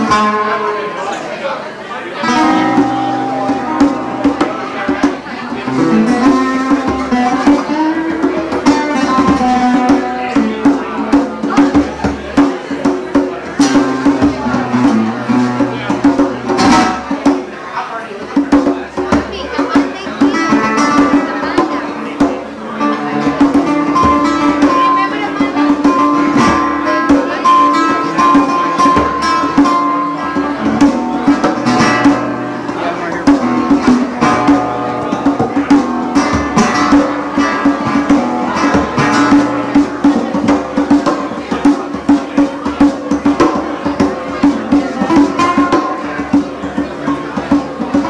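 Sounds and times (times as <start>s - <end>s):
classical guitar melodic runs: 0.0s - 48.0s
bongos struck by hand: 2.2s - 17.6s, 18.2s - 48.0s.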